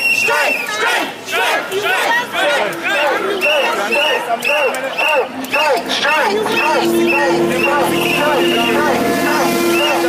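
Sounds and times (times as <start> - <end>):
whistle blasts: 0.0 - 0.8, 6.5 - 10.0
crowd shouting and cheering: 0.0 - 10.0.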